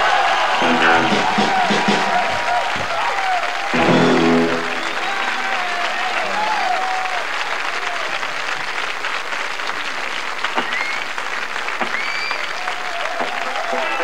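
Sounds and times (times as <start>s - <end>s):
audience applauding and cheering: 0.0s - 14.0s
short rising whistles: 10.6s - 11.1s, 11.9s - 12.5s.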